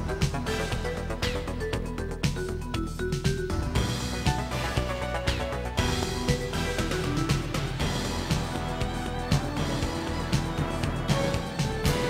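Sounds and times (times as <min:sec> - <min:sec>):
synth theme music over a beat: 0:00.0 - 0:12.0.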